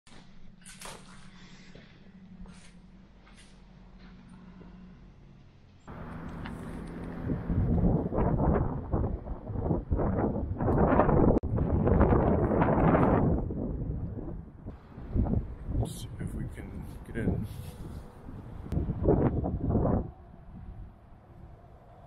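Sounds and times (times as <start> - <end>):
wind buffeting microphone: 6.0 - 22.0.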